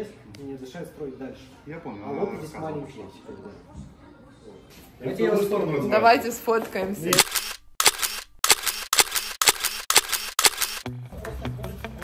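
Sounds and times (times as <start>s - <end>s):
camera shutter clicking: 7.1s - 10.8s.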